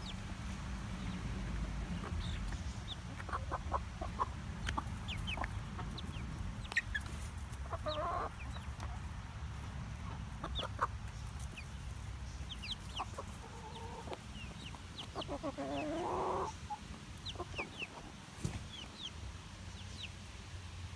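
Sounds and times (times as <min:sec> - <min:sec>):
hens clucking: 0:00.0 - 0:20.3.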